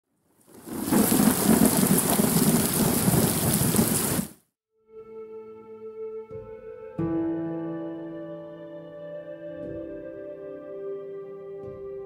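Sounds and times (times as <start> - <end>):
heavy rain: 0.3 - 4.4
thunder rumbling: 0.5 - 4.4.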